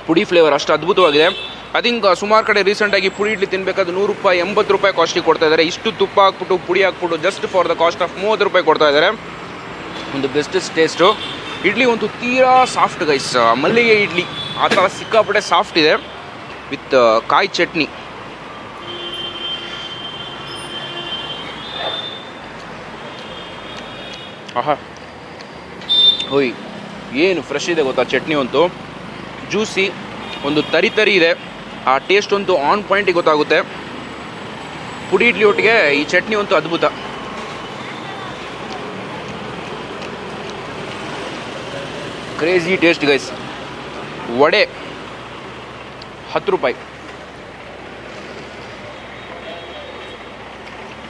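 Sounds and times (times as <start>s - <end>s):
street traffic: 0.0s - 51.0s.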